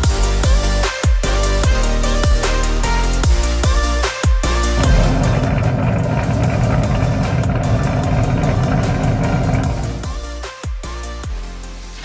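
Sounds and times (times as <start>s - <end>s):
electronic dance music: 0.0s - 11.5s
car engine running: 4.6s - 10.4s.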